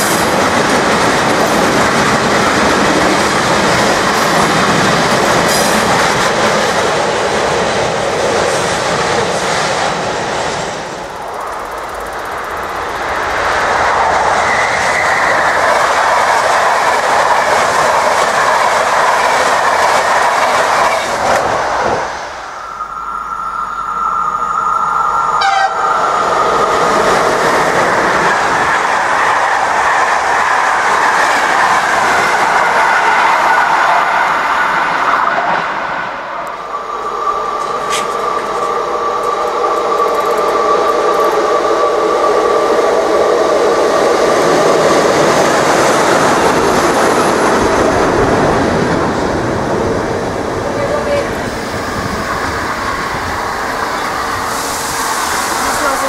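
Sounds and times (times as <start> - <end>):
electric locomotive whining: 0.0 - 56.0
train coaches rushing and rattling: 0.0 - 56.0
steady high tone: 22.3 - 26.9.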